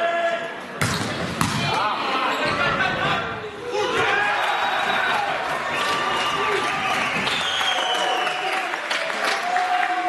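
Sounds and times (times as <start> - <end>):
spectators' voices: 0.0 - 10.0
volleyball struck hard: 0.8 - 1.7.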